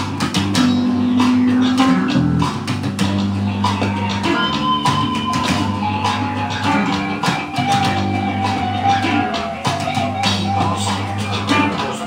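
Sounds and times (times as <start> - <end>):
drums: 0.0 - 12.0
electric bass guitar: 0.0 - 12.0
sliding guitar note: 0.4 - 9.4.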